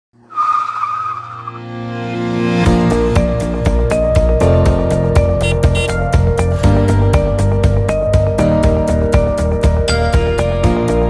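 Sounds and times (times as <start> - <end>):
car tyre screech: 0.2 - 1.7
background music: 0.3 - 11.0.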